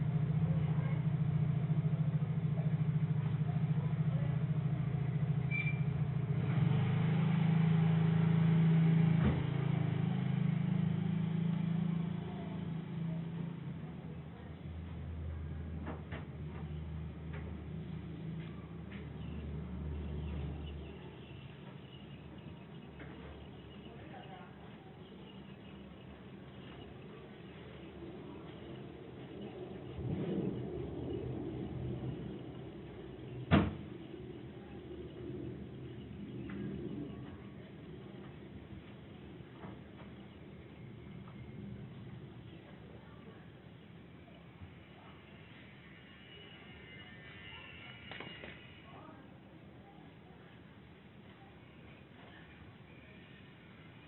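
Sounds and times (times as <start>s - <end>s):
car engine idling: 0.0s - 45.7s.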